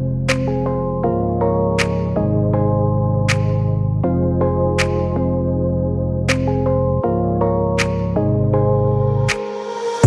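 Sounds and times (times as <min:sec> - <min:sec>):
synthesizer chords: 0:00.0 - 0:10.0.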